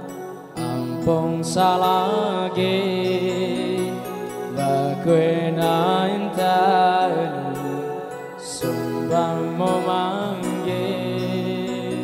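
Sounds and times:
amplified backing music: 0.0 - 12.0
man singing into a microphone: 0.0 - 12.0.

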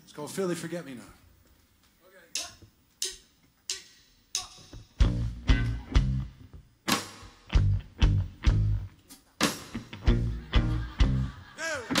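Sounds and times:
drumsticks clicking together: 2.4 - 4.9.

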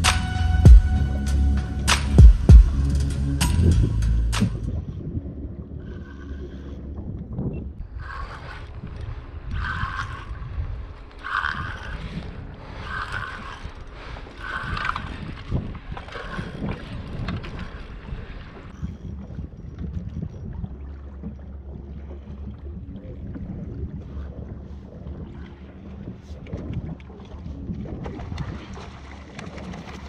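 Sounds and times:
wind buffeting microphone: 2.2 - 30.0
water moving around kayak: 4.3 - 30.0.

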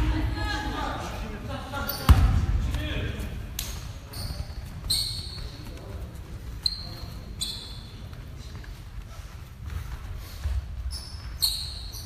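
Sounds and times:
low hum of hall: 0.0 - 12.0
sneakers squeaking on hardwood: 1.8 - 2.4, 3.7 - 8.8, 9.7 - 12.0
basketball bouncing: 2.1 - 2.7.

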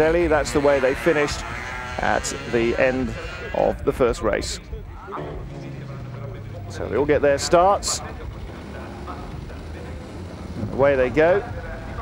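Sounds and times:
kart engines droning: 0.0 - 12.0.

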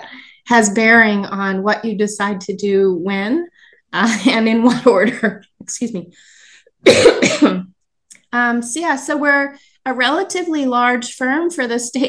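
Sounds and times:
woman coughing: 6.8 - 7.7.

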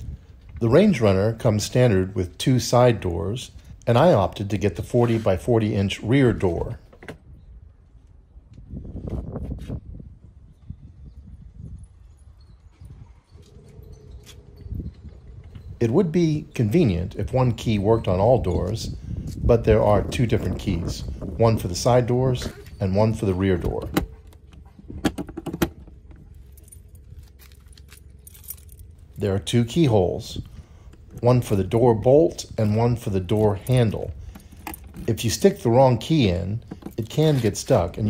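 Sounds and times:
wind rumble on microphone: 0.0 - 5.0, 5.7 - 38.0
keys jingling: 22.1 - 38.0.

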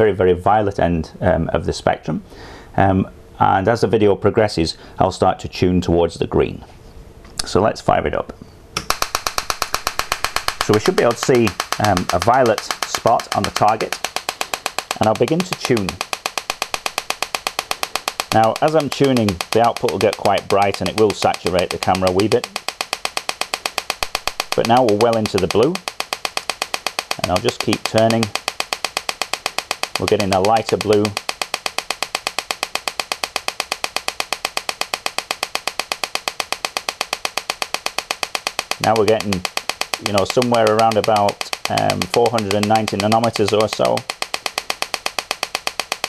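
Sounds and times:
laser sharp electrical snaps: 8.8 - 46.0.

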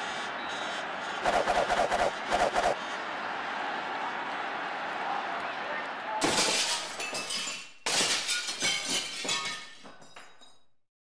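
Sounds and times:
loud shattering crashes: 6.2 - 10.2
falling pieces clinking: 6.2 - 10.7.

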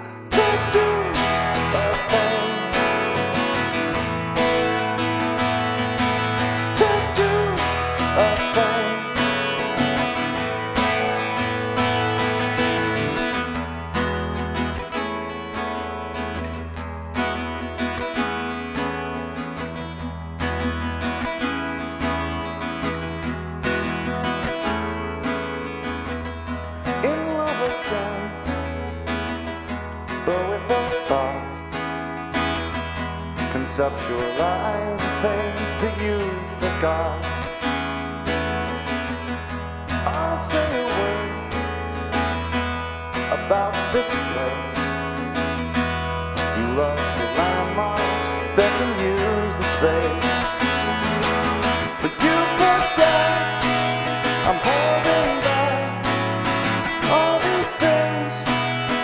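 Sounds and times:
acoustic guitar playing: 0.0 - 59.0.

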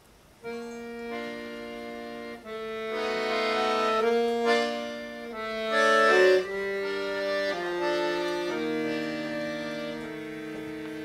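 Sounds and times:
accordion playing chords: 0.4 - 11.0.

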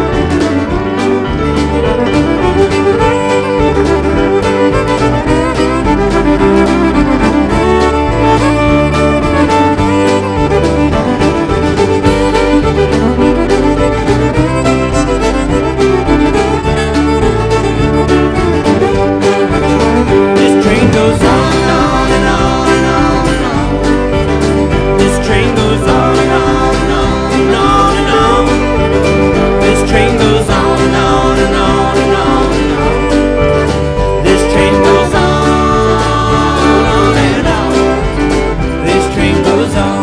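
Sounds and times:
country band playing: 0.0 - 40.0
fiddle lead: 0.0 - 40.0.

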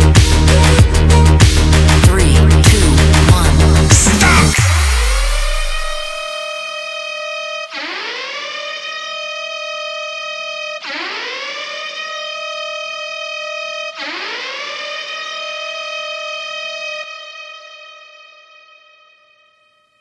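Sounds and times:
rising siren-like synth tone: 0.0 - 18.6.

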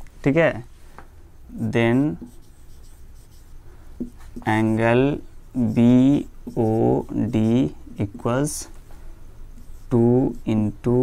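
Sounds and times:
marker pen scratching on board: 1.8 - 8.2, 9.5 - 11.0.

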